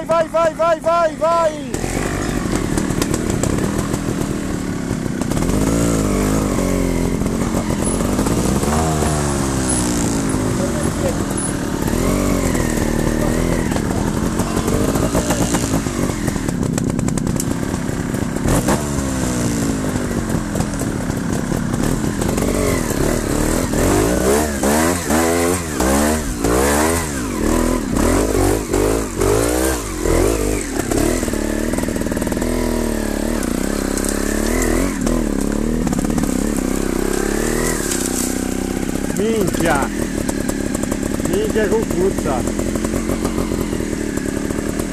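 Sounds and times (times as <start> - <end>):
motorcycle engine revving: 0.0 - 44.9.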